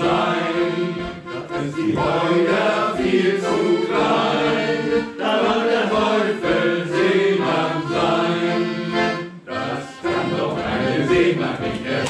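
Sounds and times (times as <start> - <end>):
men's choir singing: 0.0 - 12.0
piano accordion playing chords: 0.0 - 12.0.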